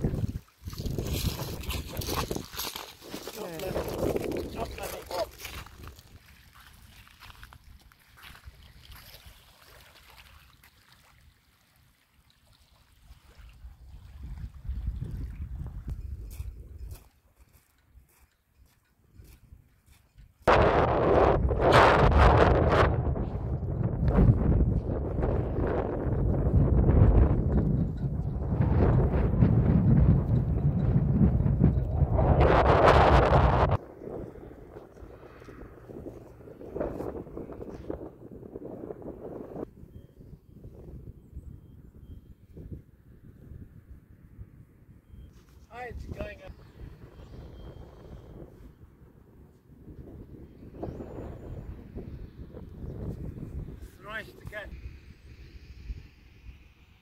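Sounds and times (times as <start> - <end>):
wind buffeting microphone: 0.0 - 9.4, 13.2 - 57.0.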